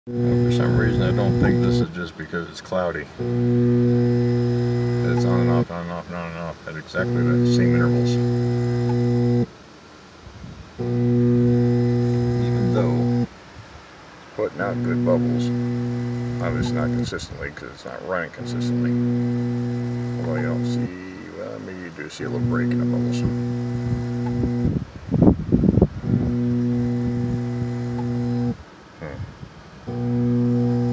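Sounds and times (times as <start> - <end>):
air pump electrical hum: 0.0 - 30.9.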